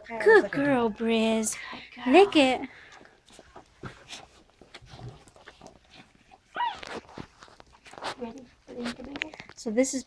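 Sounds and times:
puppy squealing: 6.5 - 6.9.

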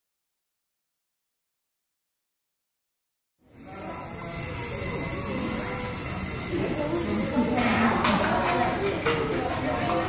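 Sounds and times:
faint distant voices: 3.4 - 10.0.

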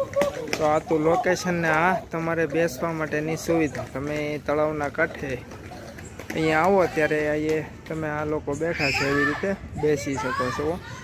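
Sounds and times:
man talking: 0.4 - 5.5, 6.3 - 10.8.

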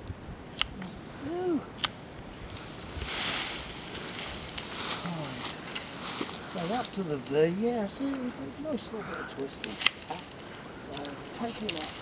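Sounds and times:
sharp stick snaps: 0.6 - 0.9, 1.8 - 2.0
brush and twigs rustling: 0.7 - 12.0.

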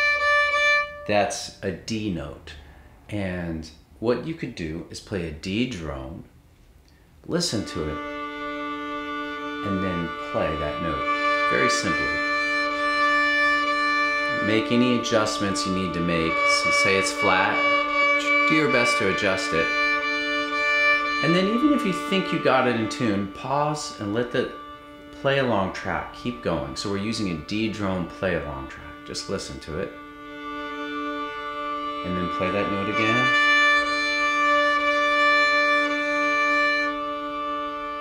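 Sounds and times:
fiddle bowing long note: 0.0 - 1.2, 7.6 - 38.0.

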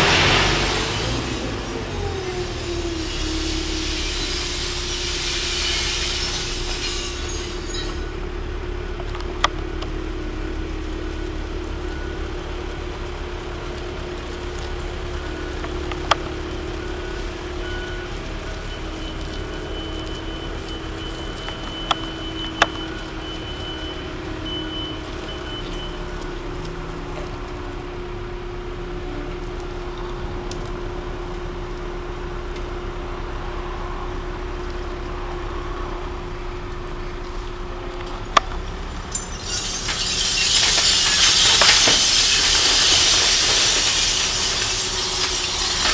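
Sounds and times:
heavy machine engine running: 0.0 - 45.9.

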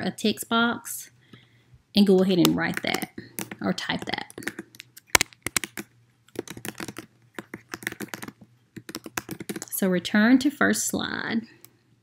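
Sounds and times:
computer keyboard typing: 2.2 - 9.8.

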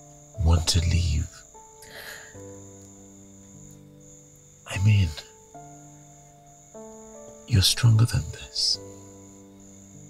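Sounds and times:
crickets trilling: 0.0 - 10.0
soft film score chords: 0.0 - 10.0.

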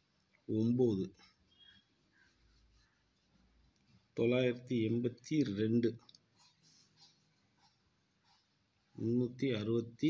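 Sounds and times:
person speaking: 0.2 - 1.5, 2.3 - 10.0.

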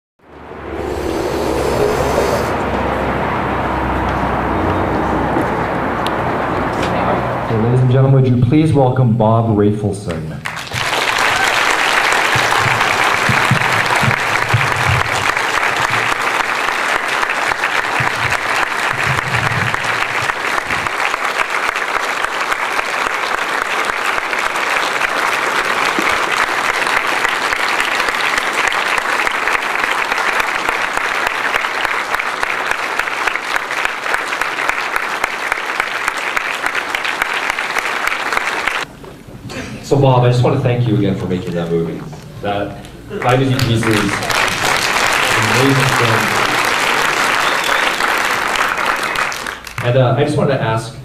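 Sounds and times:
audience applauding: 0.6 - 3.2, 10.4 - 38.9, 43.1 - 50.1
voices: 45.3 - 46.6.

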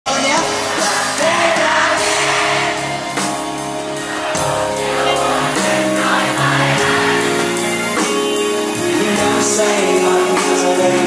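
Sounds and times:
live rock band playing: 0.1 - 11.0
person singing: 4.2 - 11.0.

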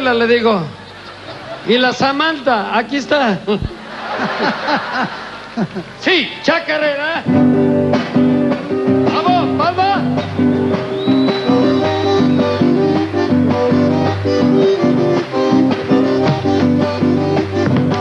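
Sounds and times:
folk band playing: 7.3 - 18.0
strummed acoustic guitars: 7.3 - 18.0
bass drum beat: 7.4 - 18.0.

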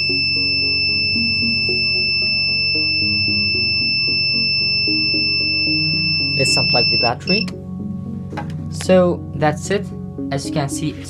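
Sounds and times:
high-pitched electronic buzzer tone: 0.0 - 7.5
background music: 0.0 - 11.0.

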